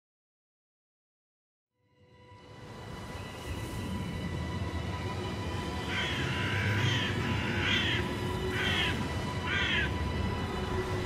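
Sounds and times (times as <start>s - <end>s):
eerie background music drone: 1.8s - 11.0s
crow cawing: 5.8s - 10.0s.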